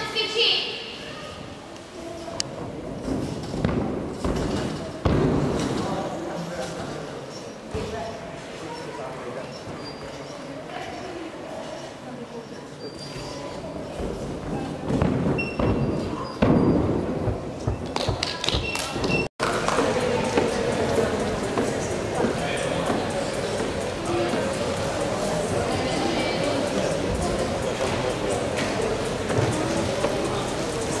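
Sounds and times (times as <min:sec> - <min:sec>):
echoing sports hall noise: 0:00.0 - 0:31.0
indistinct chatter: 0:00.0 - 0:31.0.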